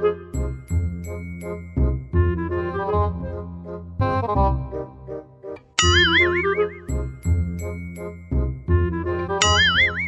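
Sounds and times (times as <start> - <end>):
light comedic background music: 0.0 - 10.0
cartoon boing spring sound: 5.8 - 6.9, 9.4 - 10.0.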